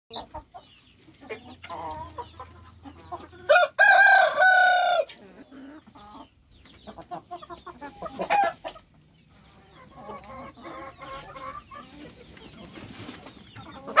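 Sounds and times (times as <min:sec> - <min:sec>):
chickens clucking: 0:00.1 - 0:14.0
rooster crowing: 0:03.5 - 0:05.1.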